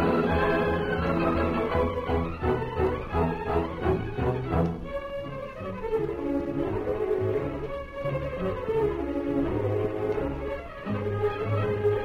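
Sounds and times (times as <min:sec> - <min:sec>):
orchestral music with bowed strings: 0:00.0 - 0:12.0.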